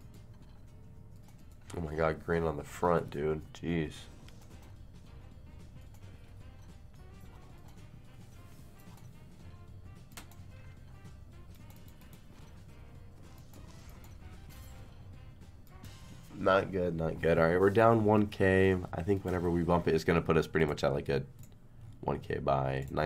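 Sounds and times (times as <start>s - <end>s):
slot game music: 0.0s - 22.3s.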